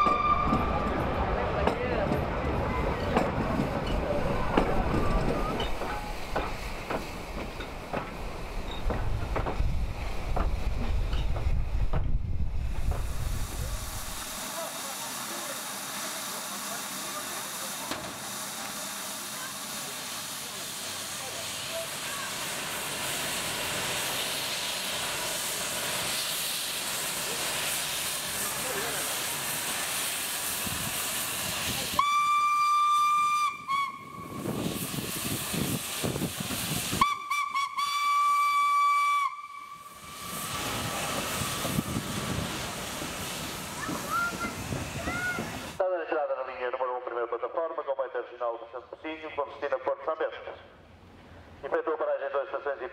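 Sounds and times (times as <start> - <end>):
steam whistle blasts: 0.0 - 0.9, 32.0 - 34.7, 36.9 - 40.5
steam locomotive hissing: 0.0 - 45.9.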